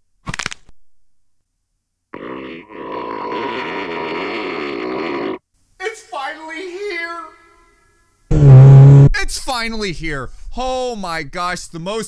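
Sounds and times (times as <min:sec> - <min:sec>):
buzzy wobbling tone: 0:08.3 - 0:09.2.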